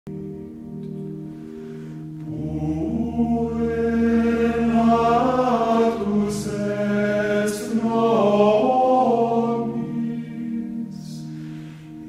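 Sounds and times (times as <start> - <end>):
held low drone: 1.0 - 12.0
choir chanting slow melody: 1.6 - 12.0.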